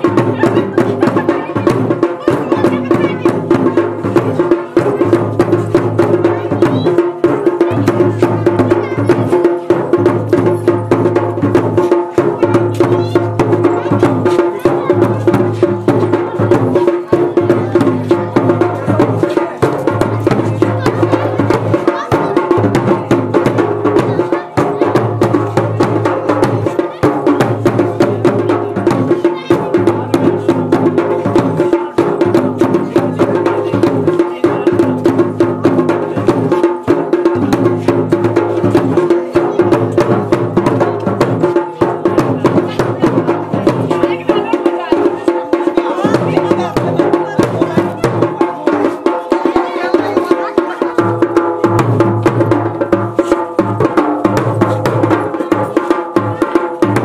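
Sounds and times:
folk dance music with fast drums: 0.0 - 57.0.

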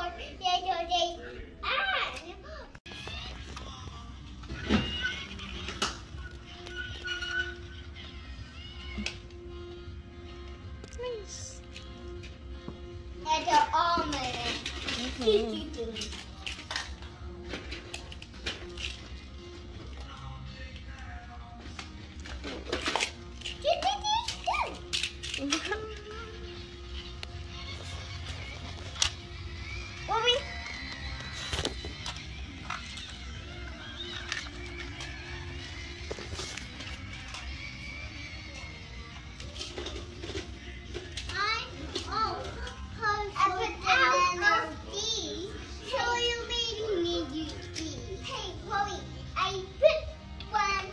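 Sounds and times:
plastic toy pieces clicking: 14.2 - 19.0, 22.2 - 25.8
child humming and vocalising: 24.6 - 26.9.

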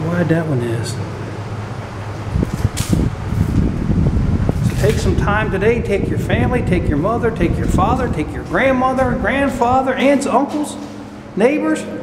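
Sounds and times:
low irregular microphone rumble: 0.0 - 11.6
steady low hum: 0.0 - 12.0.

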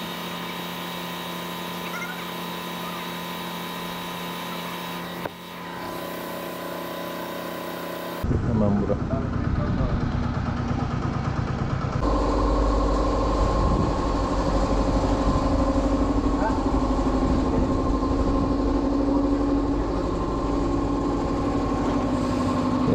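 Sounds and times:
engine idling: 0.0 - 22.9.

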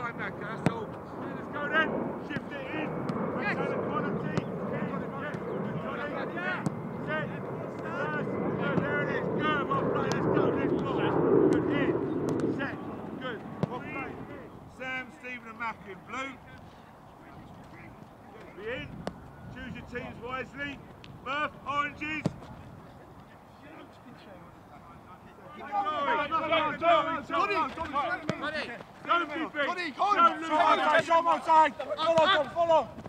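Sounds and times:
low rumbling noise: 0.0 - 14.8
voices calling: 0.0 - 33.0
football being kicked: 4.2 - 4.5, 12.3 - 12.6, 13.4 - 14.0, 19.0 - 19.2.

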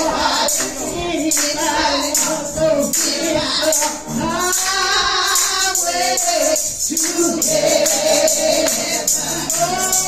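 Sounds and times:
accompanying music: 0.0 - 10.0
women singing gospel: 0.0 - 10.0.

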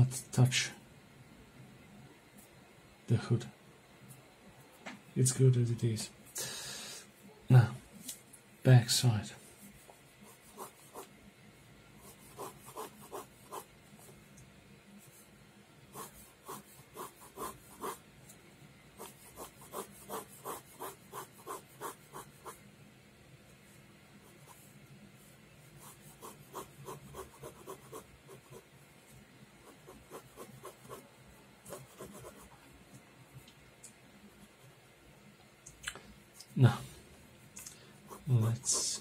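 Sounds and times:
pen scratching on paper: 10.2 - 11.1, 12.0 - 13.7, 15.9 - 18.0, 19.0 - 22.6, 25.8 - 28.6, 29.6 - 31.1, 31.7 - 32.5, 38.1 - 39.0.

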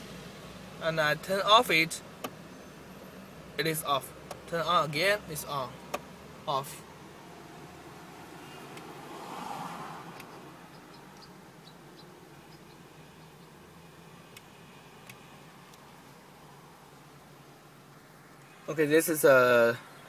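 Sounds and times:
car interior hum: 0.0 - 20.0.

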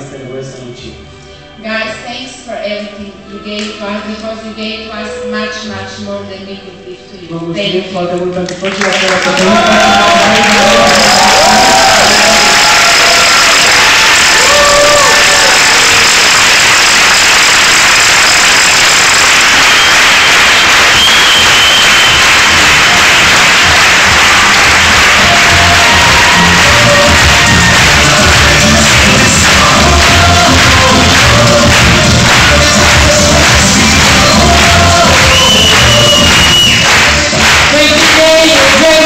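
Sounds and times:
audience applauding: 8.5 - 39.0.

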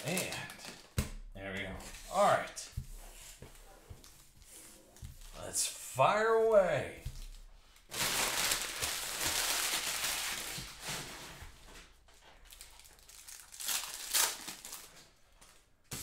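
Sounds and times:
cellophane wrappers crinkling: 0.0 - 1.0, 7.2 - 11.3, 12.4 - 15.6.

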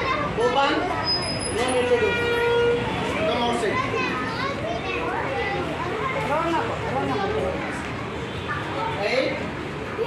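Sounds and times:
children calling out together: 3.0 - 7.4.

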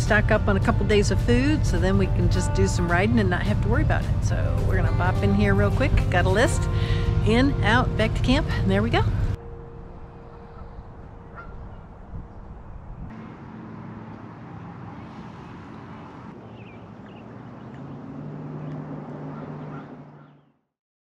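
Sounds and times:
low steady hum: 0.0 - 15.2.

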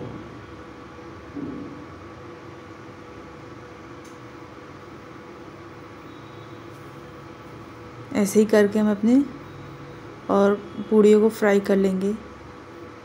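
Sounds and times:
induction cooktop hum and hiss: 0.0 - 13.0.

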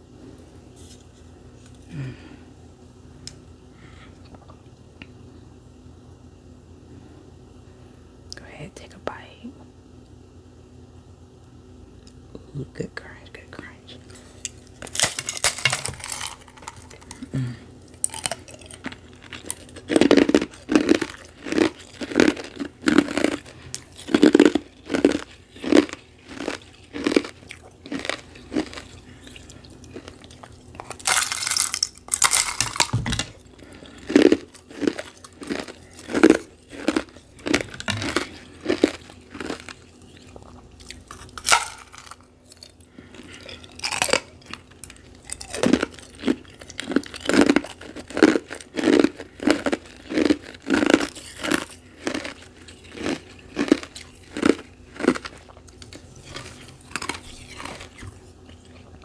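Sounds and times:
mouth crunching ice: 14.8 - 58.1.

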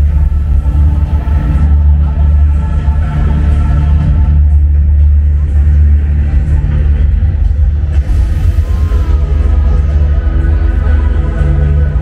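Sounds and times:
deep rumbling car engine effect: 5.1 - 12.0.

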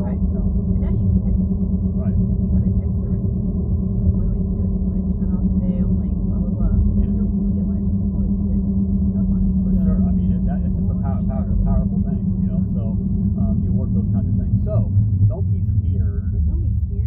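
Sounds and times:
car cabin rumble: 0.0 - 17.0
indistinct talking: 0.0 - 17.0.

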